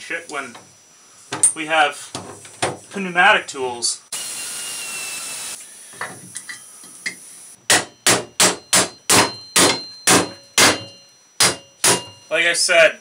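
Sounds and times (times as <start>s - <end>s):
pneumatic air tool hissing: 4.1s - 7.6s
hammer striking metal: 7.7s - 12.3s.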